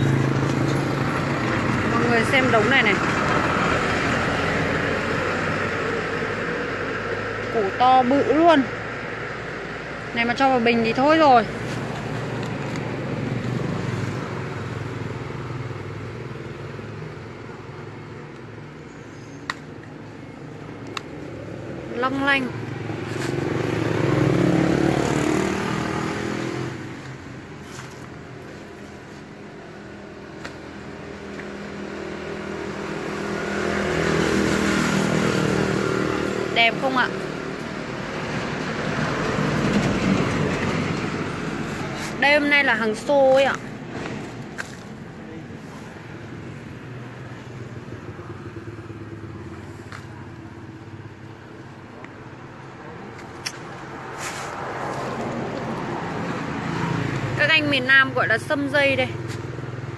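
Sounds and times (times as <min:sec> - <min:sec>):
vehicle passing rumble: 0:00.0 - 0:59.9.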